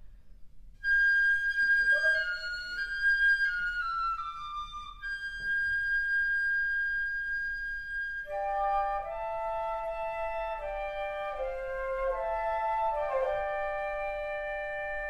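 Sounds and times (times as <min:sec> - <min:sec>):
high flute melody: 0:00.8 - 0:15.0
lower flute note: 0:00.8 - 0:15.0.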